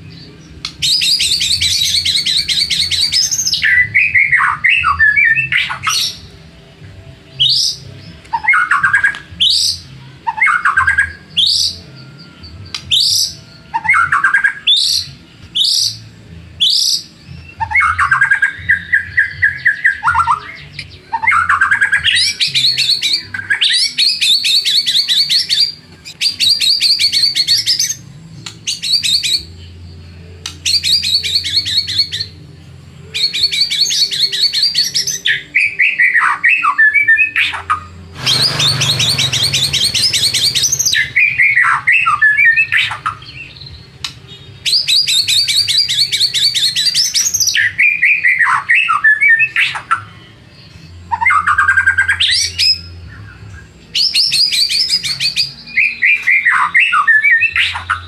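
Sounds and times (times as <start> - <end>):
songbird singing trills and whistles: 0.0 - 58.0.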